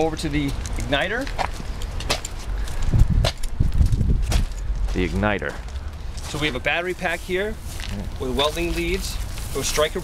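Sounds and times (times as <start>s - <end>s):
footsteps on gritty sand: 0.0s - 10.0s.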